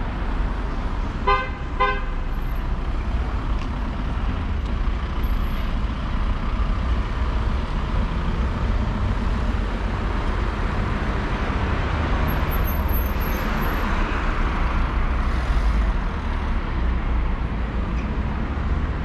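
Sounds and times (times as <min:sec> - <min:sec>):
street traffic rumble: 0:00.0 - 0:19.0
car horn tooting: 0:01.2 - 0:02.1.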